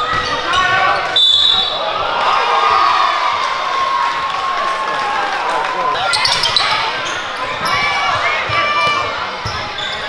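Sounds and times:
crowd chatter: 0:00.0 - 0:10.0
sneakers squeaking on court: 0:06.1 - 0:10.0.

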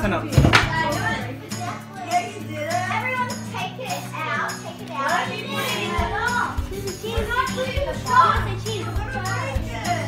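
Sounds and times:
background music: 0:00.0 - 0:10.0
indistinct talking: 0:00.0 - 0:10.0
child's voice: 0:00.7 - 0:10.0.

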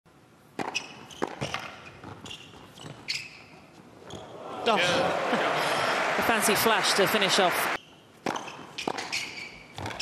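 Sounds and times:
tennis ball bouncing: 0:00.5 - 0:03.1, 0:08.2 - 0:10.0
tennis racket hitting ball: 0:00.6 - 0:02.2, 0:08.2 - 0:10.0
shoe squeaks on court: 0:00.6 - 0:04.3, 0:07.8 - 0:10.0.

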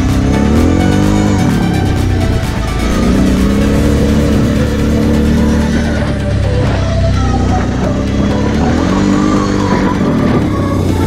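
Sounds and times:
quad bike engine revving: 0:00.0 - 0:11.0.

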